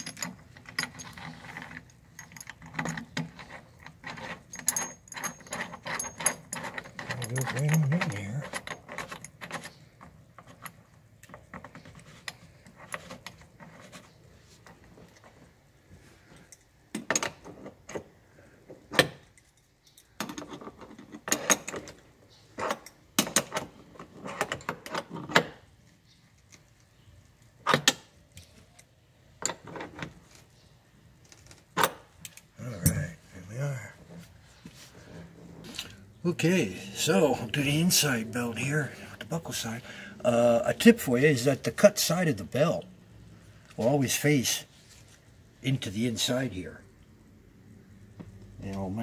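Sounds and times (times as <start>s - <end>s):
metal hardware clinking and rattling: 0.0s - 15.6s, 18.8s - 34.2s.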